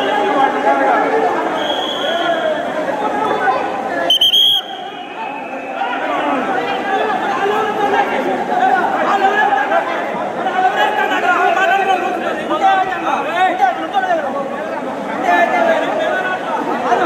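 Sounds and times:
crowd of men talking: 0:00.0 - 0:17.0.

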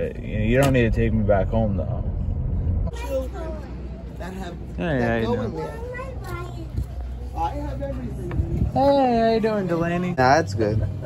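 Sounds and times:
car road rumble: 0:00.0 - 0:11.0
street noise: 0:00.0 - 0:11.0.

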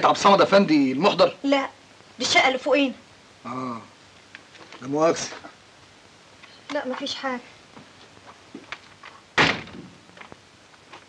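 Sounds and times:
wooden door slamming: 0:09.4 - 0:10.0.

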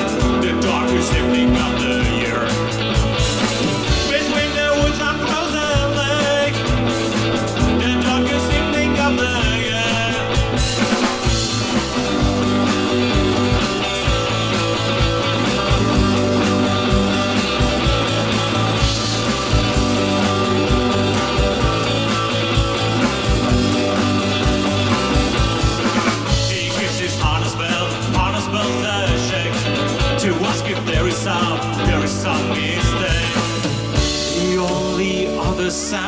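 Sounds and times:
person singing: 0:00.0 - 0:02.6, 0:03.6 - 0:06.7, 0:07.7 - 0:10.4, 0:26.3 - 0:36.0
rock band playing live: 0:00.0 - 0:36.0.

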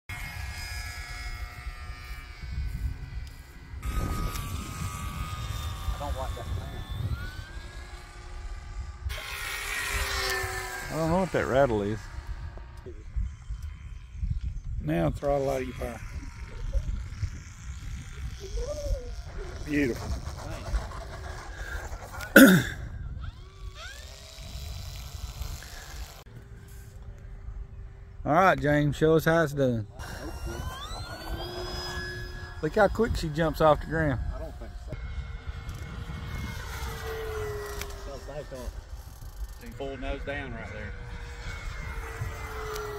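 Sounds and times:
wind rumbling on microphone: 0:00.1 - 0:28.3, 0:29.8 - 0:42.9
model plane motor whine: 0:00.1 - 0:42.9.

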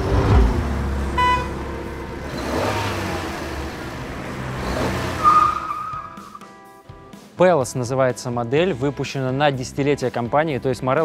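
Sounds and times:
car engine starting and running: 0:00.0 - 0:06.4.

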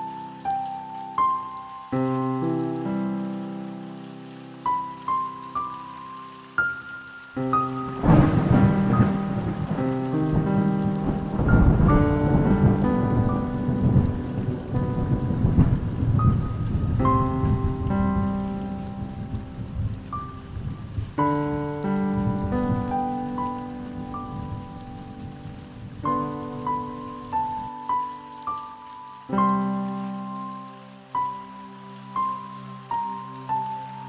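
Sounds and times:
slow keyboard music: 0:00.0 - 0:34.0
steady rain: 0:00.0 - 0:34.0
low thunder-like rumble: 0:07.7 - 0:27.8.

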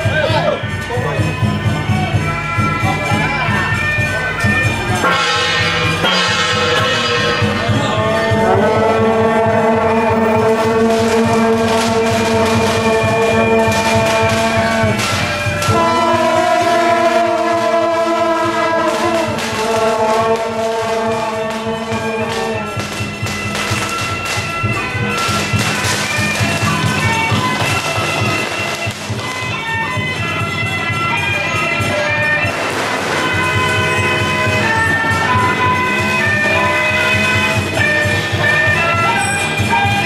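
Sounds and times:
marching brass band playing: 0:04.4 - 0:40.0.

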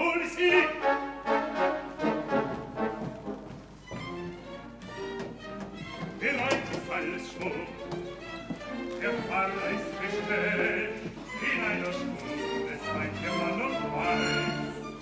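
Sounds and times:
opera singing voices: 0:00.0 - 0:02.5, 0:06.2 - 0:07.8, 0:08.7 - 0:15.0
orchestra bowed strings: 0:00.0 - 0:15.0.

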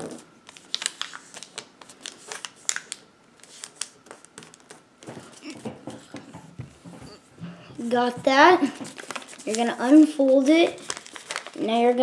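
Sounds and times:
paper folding and crackling: 0:00.0 - 0:12.0.

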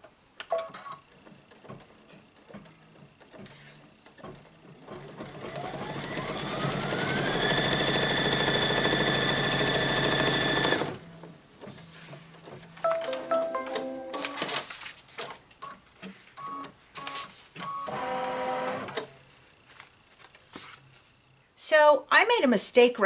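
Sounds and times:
embroidery machine stitching: 0:01.2 - 0:11.8.

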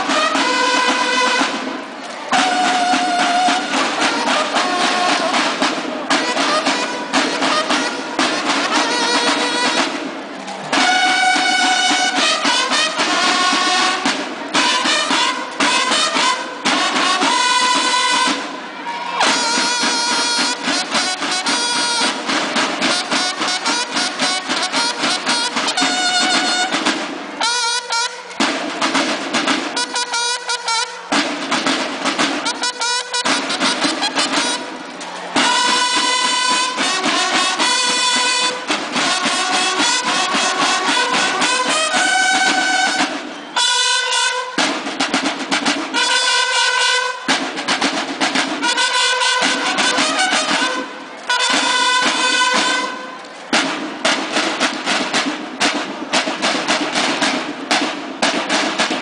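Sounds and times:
bugles playing: 0:00.0 - 0:59.0
snare drums beating: 0:00.0 - 0:59.0.

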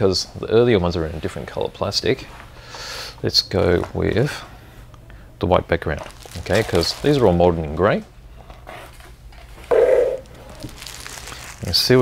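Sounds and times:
cellophane bags crinkling: 0:05.9 - 0:07.6, 0:10.2 - 0:12.0.

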